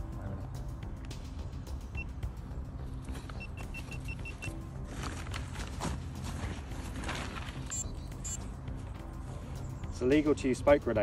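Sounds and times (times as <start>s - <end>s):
short high electronic beeps: 3.4s - 4.5s.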